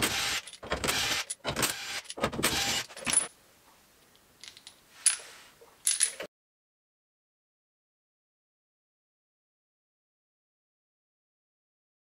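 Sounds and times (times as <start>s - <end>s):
metal nuts rattling and clinking: 4.4s - 5.2s, 5.8s - 6.3s.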